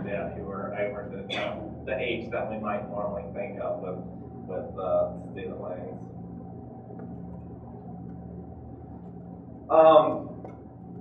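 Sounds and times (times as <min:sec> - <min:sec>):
faint steady tone: 0:00.0 - 0:11.0
low room hum: 0:00.0 - 0:11.0.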